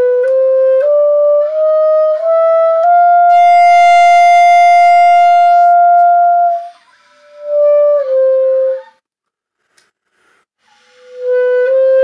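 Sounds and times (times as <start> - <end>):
clarinet holding a high note: 0.0 - 9.0.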